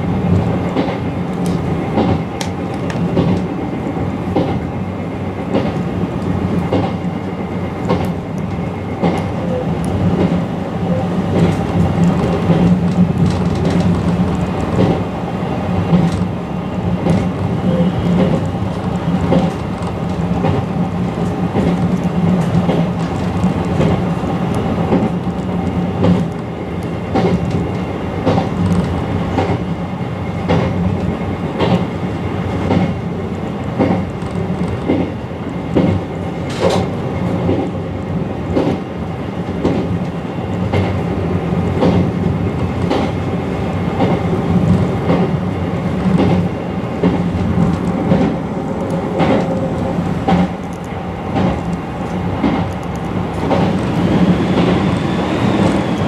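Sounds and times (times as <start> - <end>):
electric train running hum: 0.0 - 56.0
wheels clacking over rail joints: 17.0 - 26.4.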